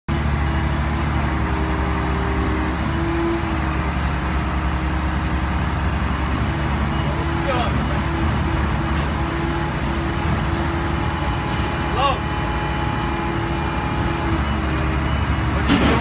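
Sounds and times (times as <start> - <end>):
engines droning: 0.1 - 16.0.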